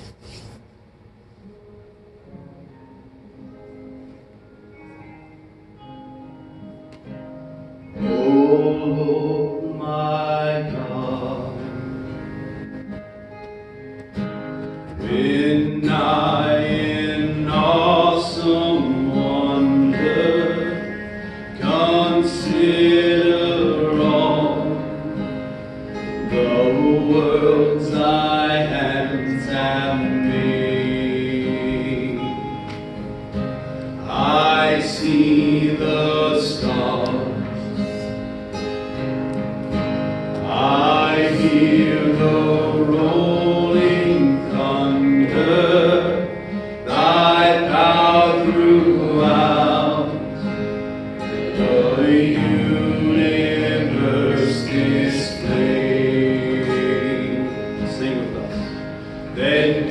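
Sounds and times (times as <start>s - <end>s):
acoustic and electric guitars: 0.0s - 59.9s
man singing into a microphone: 8.0s - 12.0s, 15.0s - 25.3s, 26.2s - 32.6s, 34.0s - 38.1s, 40.4s - 50.6s, 51.5s - 58.8s, 59.4s - 59.9s.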